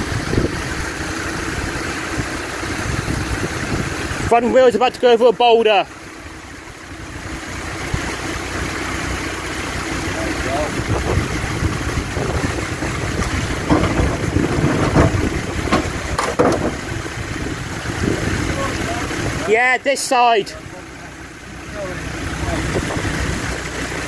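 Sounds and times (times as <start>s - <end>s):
car engine running at low revs: 0.0s - 24.0s
tyres and underbody knocking on rock: 13.2s - 16.9s.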